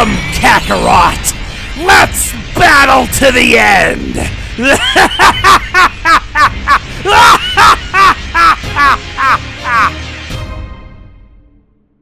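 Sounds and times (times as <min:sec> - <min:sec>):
man laughing harshly: 0:04.6 - 0:09.9.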